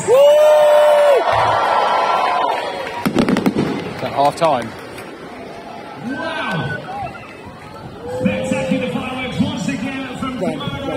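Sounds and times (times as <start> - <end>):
fireworks crackling: 3.0 - 5.2
fireworks sharp cracks: 3.0 - 5.2.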